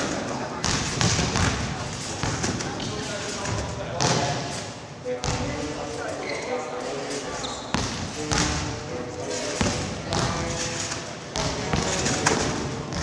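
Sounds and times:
voices chattering: 0:00.0 - 0:13.0.

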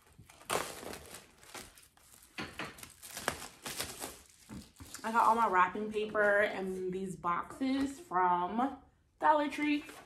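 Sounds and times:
plastic packaging crinkling: 0:00.0 - 0:05.6.

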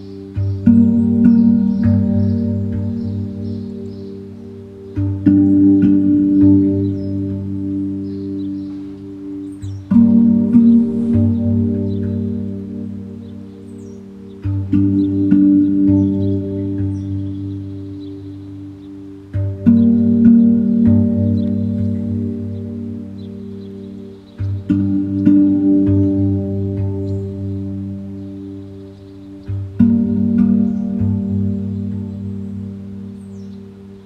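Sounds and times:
low pulsing tone: 0:00.0 - 0:34.0
steel tongue drum notes: 0:00.0 - 0:34.0.

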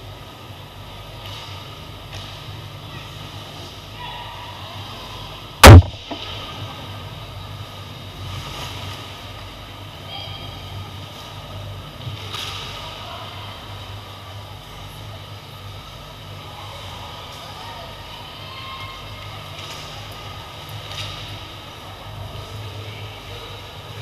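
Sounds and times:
faint skate and stick noise: 0:00.2 - 0:24.0
hockey puck struck hard: 0:05.6 - 0:06.4.

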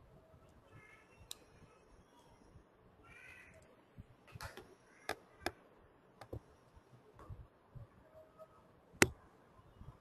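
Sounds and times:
computer mouse clicks: 0:06.2 - 0:06.4.

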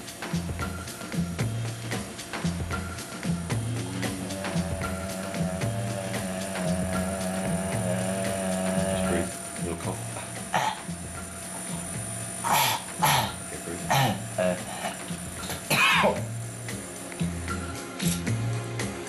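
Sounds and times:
background music: 0:00.0 - 0:19.0
man coughing: 0:10.2 - 0:10.9, 0:12.4 - 0:16.3.

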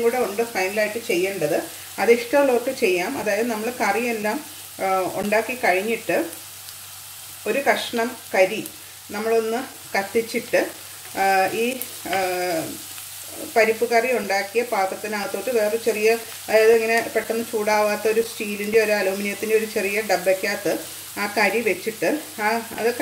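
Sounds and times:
woman talking: 0:00.0 - 0:06.4, 0:07.5 - 0:23.0
onions sizzling: 0:00.0 - 0:23.0.

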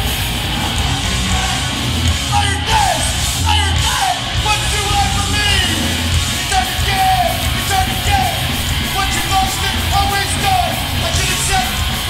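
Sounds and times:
bass guitar: 0:00.0 - 0:12.0
distorted electric guitars: 0:00.0 - 0:12.0
drums: 0:00.0 - 0:12.0
shouted vocals: 0:00.0 - 0:12.0.

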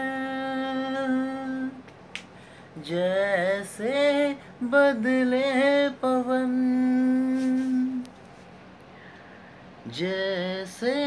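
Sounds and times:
man singing unaccompanied: 0:00.0 - 0:01.8, 0:02.8 - 0:08.1, 0:09.8 - 0:11.0.

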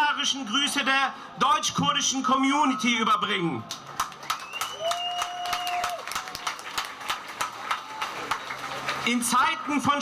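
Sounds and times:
crowd applause: 0:03.7 - 0:09.4.

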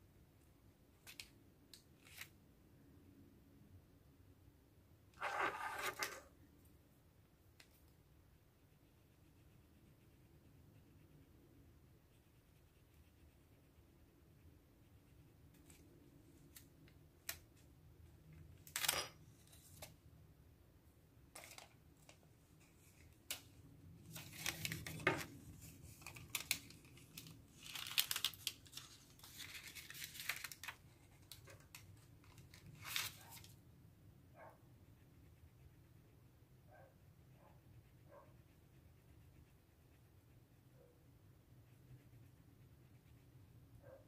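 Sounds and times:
rustling of sticker sheets: 0:21.4 - 0:33.6.

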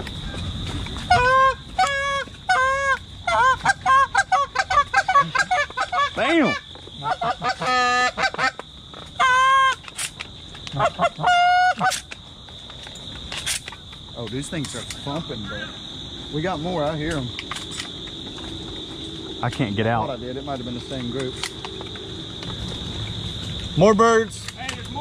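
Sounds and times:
high insect drone: 0:00.0 - 0:25.0
geese honking: 0:00.2 - 0:10.0, 0:10.6 - 0:12.2.

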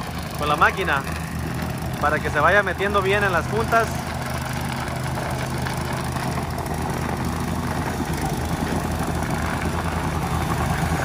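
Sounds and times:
plate compactor running: 0:00.0 - 0:11.0.

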